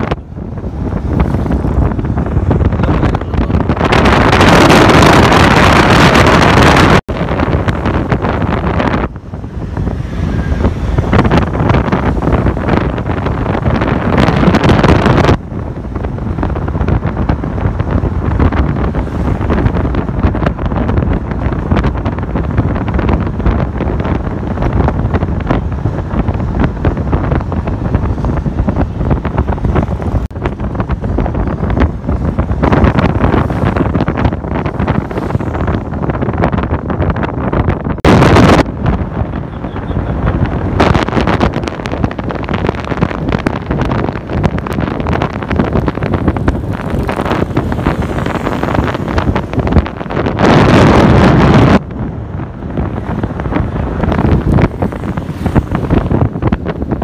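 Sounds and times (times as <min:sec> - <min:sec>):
wind buffeting microphone: 0:00.0 - 0:57.0.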